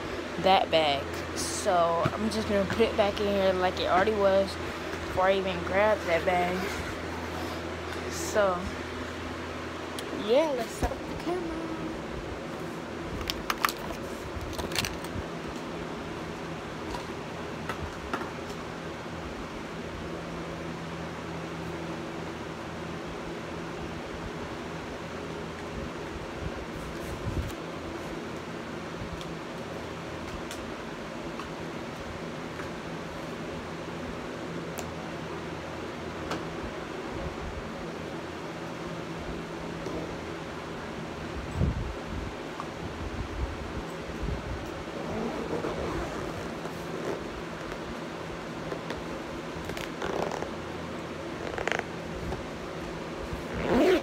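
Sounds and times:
fan humming: 0.0s - 54.0s.

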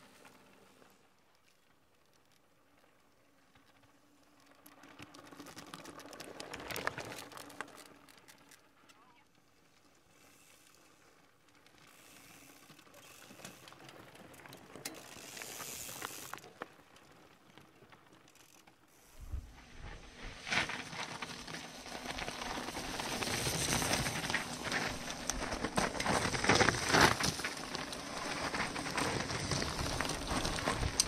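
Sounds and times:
tyres crunching over stones: 20.5s - 31.0s.

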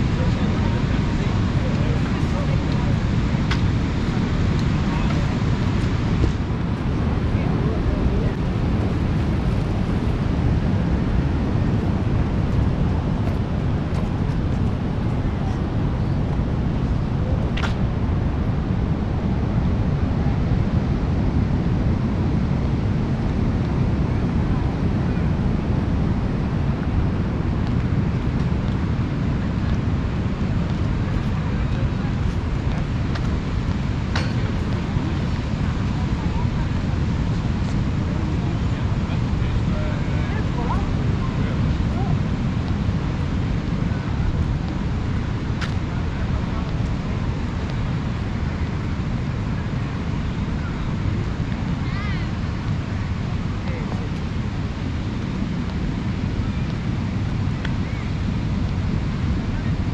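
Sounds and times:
sea surf: 0.0s - 59.9s
wind rumbling on microphone: 0.0s - 59.9s.

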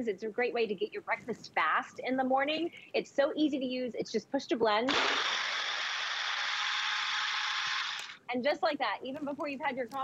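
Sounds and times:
blender blending fruit: 4.9s - 8.2s.

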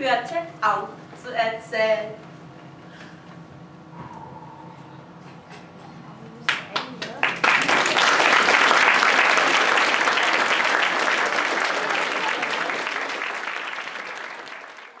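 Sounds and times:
audience applauding: 6.5s - 15.0s.

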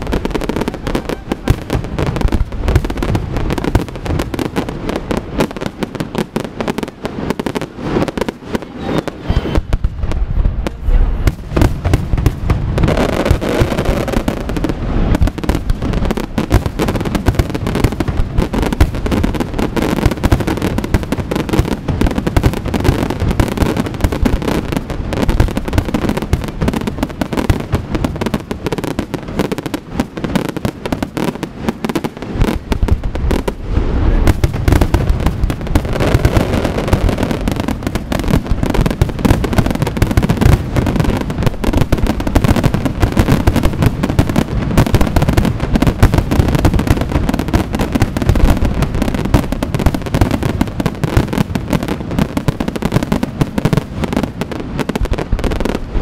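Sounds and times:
deep firework booms: 0.0s - 56.0s
fireworks bursting and crackling: 0.0s - 56.0s.

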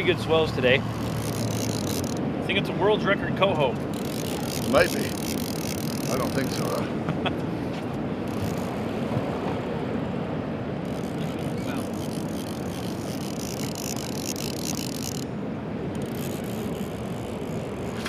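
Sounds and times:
sea: 0.0s - 18.0s
wind: 0.0s - 18.0s
fishing reel cranking: 0.3s - 2.2s, 3.8s - 6.8s, 8.2s - 8.8s, 10.8s - 15.3s, 15.9s - 18.0s.

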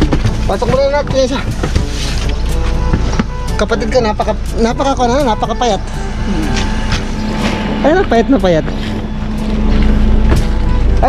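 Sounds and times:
faint voices: 0.0s - 9.8s
low mechanical hum: 5.2s - 11.0s.

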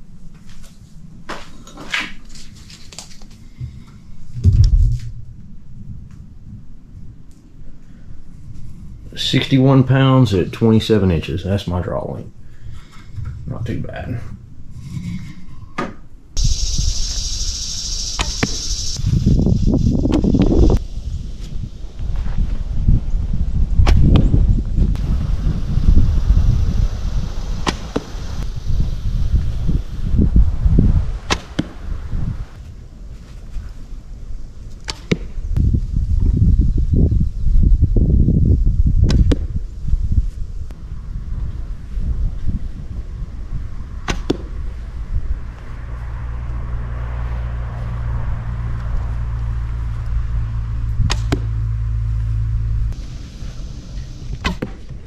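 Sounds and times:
wind rumbling on microphone: 3.4s - 10.8s, 11.4s - 55.0s.

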